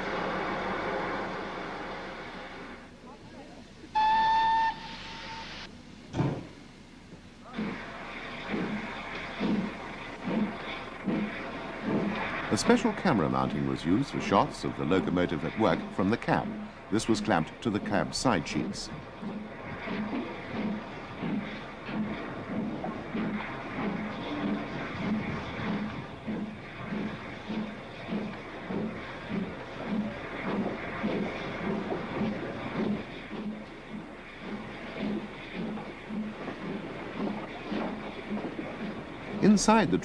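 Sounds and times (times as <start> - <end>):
train running noise: 0.0 - 40.0
steam locomotive rhythmic beat: 3.9 - 5.7, 7.6 - 40.0.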